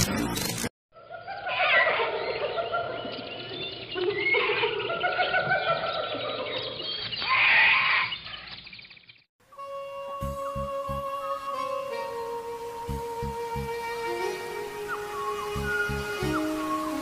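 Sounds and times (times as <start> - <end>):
birds chirping and whistling: 1.0 - 9.3, 14.3 - 17.0.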